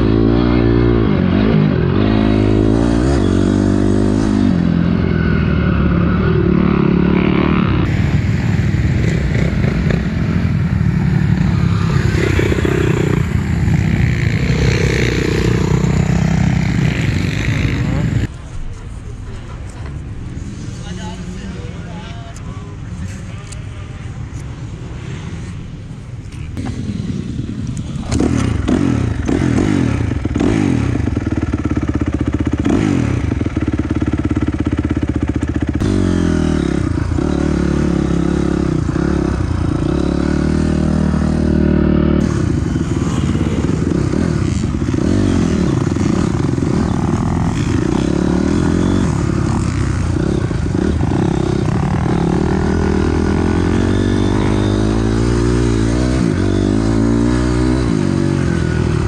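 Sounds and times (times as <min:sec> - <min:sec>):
dirt bike engine revving: 0:00.0 - 0:18.3, 0:26.6 - 0:59.0.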